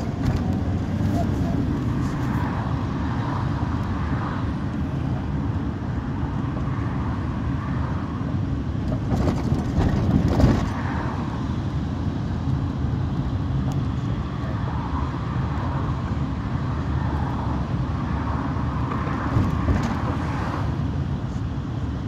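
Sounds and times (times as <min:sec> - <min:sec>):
bus engine and road rumble: 0:00.0 - 0:22.0.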